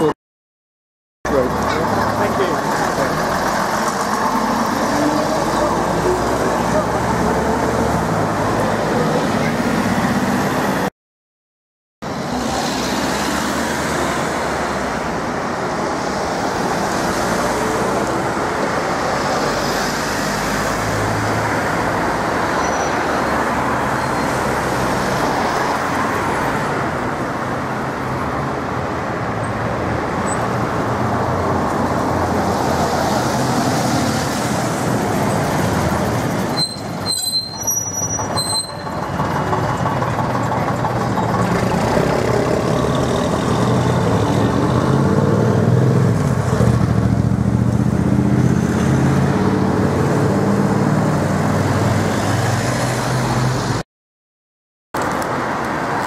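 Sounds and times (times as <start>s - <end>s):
bus diesel engine: 1.3s - 10.9s, 12.0s - 53.8s
road traffic passing: 1.3s - 10.9s, 12.0s - 53.8s, 55.0s - 56.0s.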